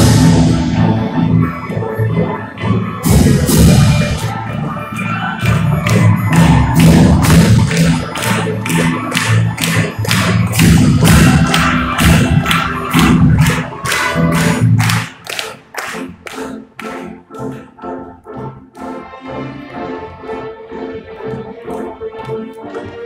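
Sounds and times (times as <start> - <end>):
sustained low orchestral chords: 0.0 - 23.0
steady beat of sharp strikes: 3.0 - 4.3, 5.4 - 16.4.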